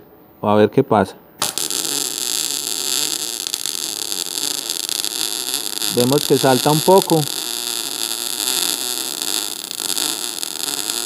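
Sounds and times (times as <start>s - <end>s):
welding arc crackling: 1.4s - 11.0s.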